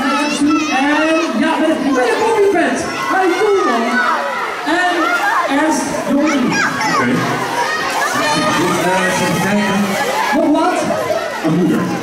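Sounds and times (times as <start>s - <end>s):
young children talking and calling: 0.0s - 12.0s.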